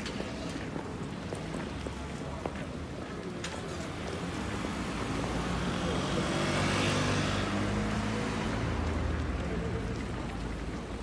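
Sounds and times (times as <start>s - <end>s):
motor scooter passing by: 5.3s - 9.2s.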